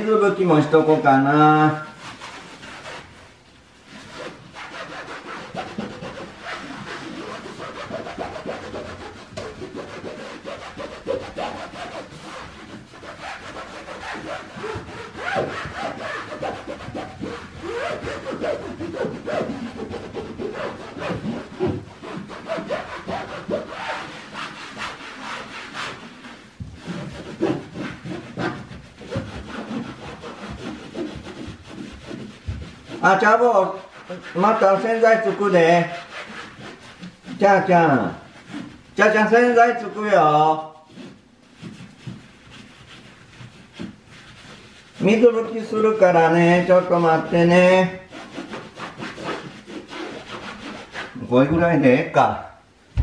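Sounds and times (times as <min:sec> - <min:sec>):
cloth scrubbing a wall: 0:00.0 - 0:53.0.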